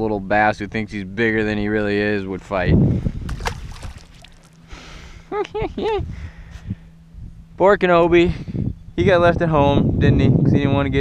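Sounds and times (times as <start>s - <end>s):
faint steady hum: 0.0s - 11.0s
water noise: 3.1s - 4.8s
fish splashing in water: 3.3s - 4.7s.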